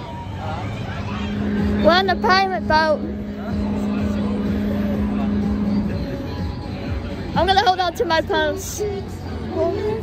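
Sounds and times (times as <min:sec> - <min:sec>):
ride machinery humming and rumbling: 0:00.0 - 0:10.0.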